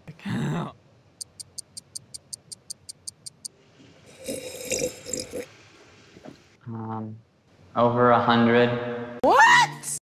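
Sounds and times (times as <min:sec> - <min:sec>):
high even ticks: 0:01.2 - 0:03.6.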